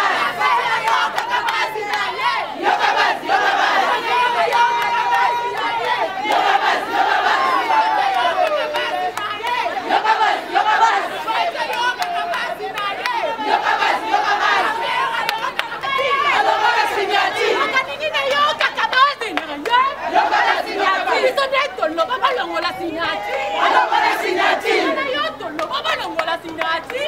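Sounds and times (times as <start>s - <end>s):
women shouting and cheering: 0.0s - 27.0s.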